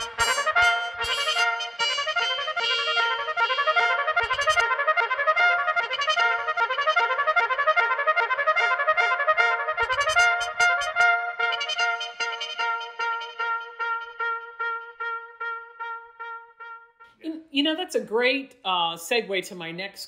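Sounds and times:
steady held tone: 0.0s - 4.6s
repeating sampled trumpet notes: 0.0s - 17.3s.

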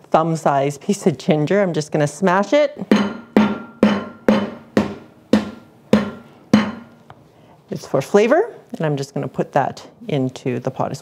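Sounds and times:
mallet pounding on wooden board: 2.9s - 7.0s.

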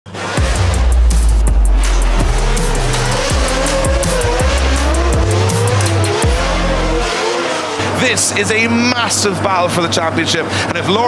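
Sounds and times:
music with deep bass and beat: 0.1s - 8.1s
car engine revving: 0.1s - 9.4s
tyres squealing: 3.0s - 8.6s.

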